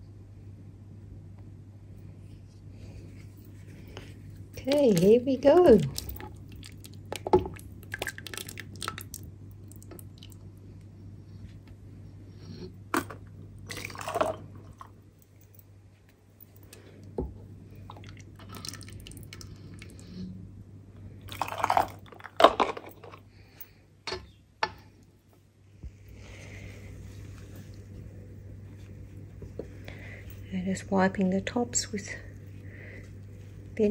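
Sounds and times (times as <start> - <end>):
low steady hum: 0.0 - 33.9
jam plopping and squelching: 4.7 - 10.0.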